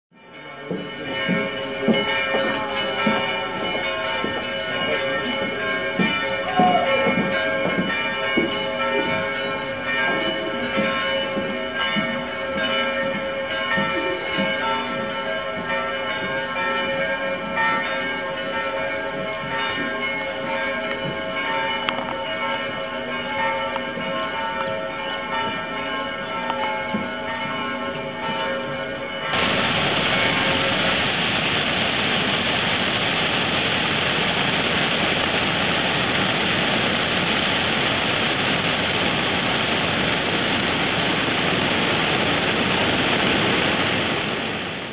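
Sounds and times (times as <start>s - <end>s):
church bells ringing: 0.1s - 44.4s
flowing river water: 29.4s - 44.9s.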